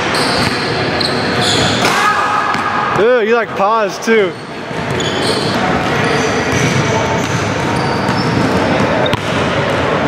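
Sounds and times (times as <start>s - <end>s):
echoing room noise: 0.0s - 10.0s.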